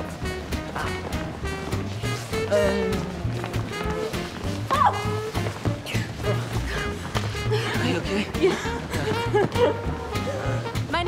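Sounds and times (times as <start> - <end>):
swing band music: 0.0 - 11.0.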